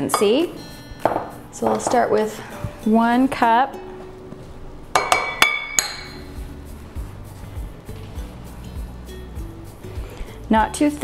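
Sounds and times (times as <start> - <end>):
background music: 0.0 - 11.0
metal cup clinking on glass bowl: 5.0 - 6.2.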